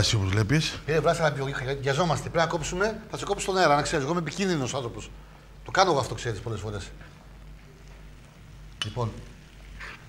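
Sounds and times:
studio room tone: 0.0s - 10.0s.

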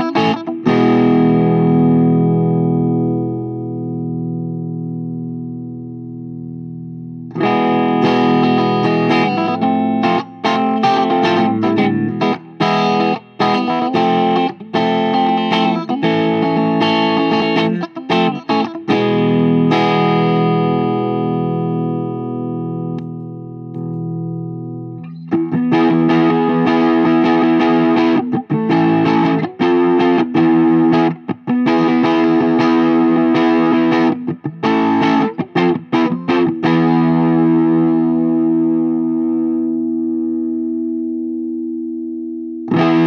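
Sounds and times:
distorted electric guitar: 0.0s - 43.0s.

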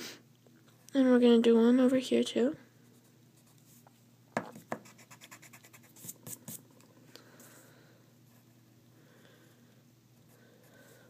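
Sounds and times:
pencil scratching on paper: 4.6s - 6.6s.

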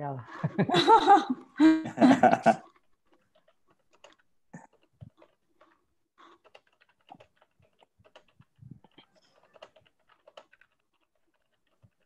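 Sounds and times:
keyboard typing: 2.5s - 12.0s.

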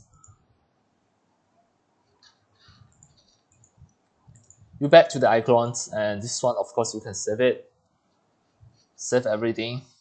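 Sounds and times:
computer mouse clicks: 0.0s - 0.4s, 2.0s - 4.8s
man speaking: 4.8s - 7.7s, 9.0s - 10.0s.

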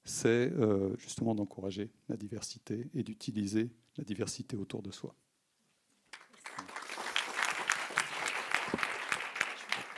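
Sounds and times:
audience applauding: 6.1s - 9.9s.

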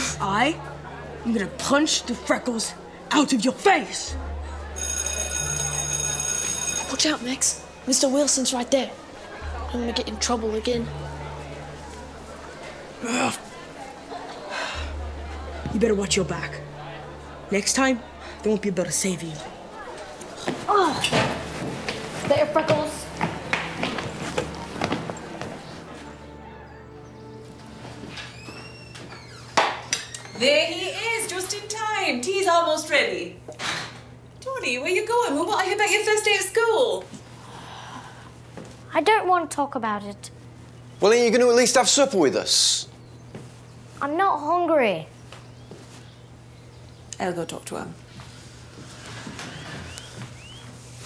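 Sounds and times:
school bell ringing: 4.6s - 8.5s.

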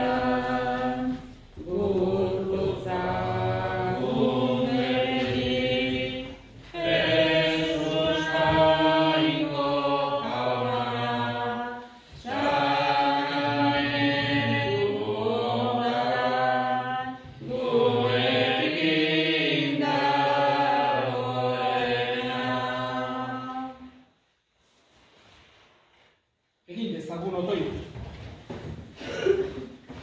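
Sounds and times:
slow sung hymn: 0.0s - 24.1s.

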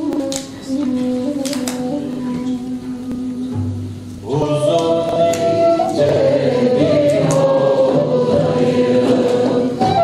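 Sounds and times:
choir singing a hymn: 4.2s - 10.0s.

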